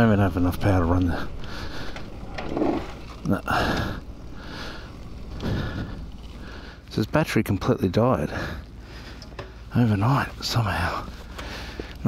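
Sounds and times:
low microphone rumble: 0:00.0 - 0:07.0.

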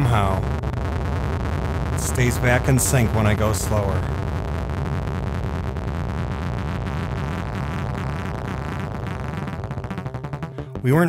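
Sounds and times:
rapid synthesizer sequence buzz: 0:00.0 - 0:11.0.

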